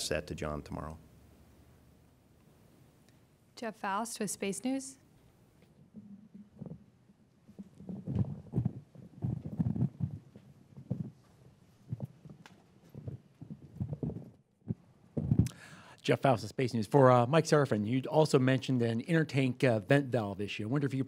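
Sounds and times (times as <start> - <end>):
microphone handling bumps: 7.6 - 15.5.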